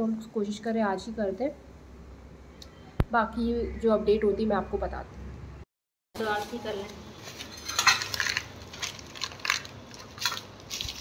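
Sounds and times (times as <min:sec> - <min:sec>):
objects crackling and rustling: 0:06.2 - 0:11.0.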